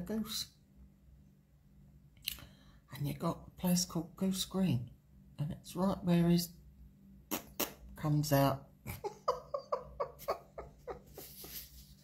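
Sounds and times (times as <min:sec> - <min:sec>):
woman laughing: 0:08.8 - 0:12.0.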